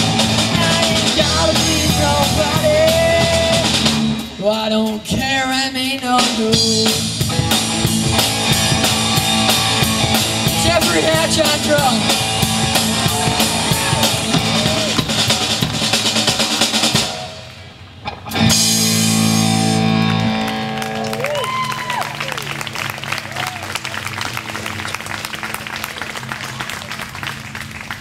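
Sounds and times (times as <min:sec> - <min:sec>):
person singing: 0:00.0 - 0:07.1
drum kit: 0:00.0 - 0:20.2
electric guitars: 0:00.0 - 0:27.9
bass guitar: 0:00.0 - 0:28.0.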